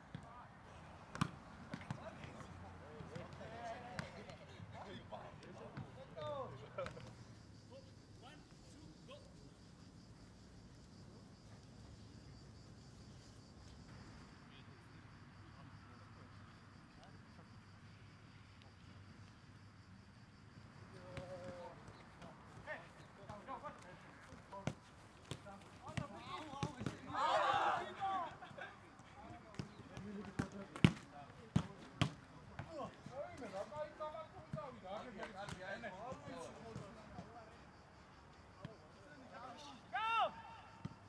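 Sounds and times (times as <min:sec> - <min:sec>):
footballers calling out: 0:00.2 - 0:09.8, 0:20.8 - 0:37.4, 0:38.7 - 0:41.0
loud shout: 0:26.4 - 0:28.8, 0:39.7 - 0:40.8.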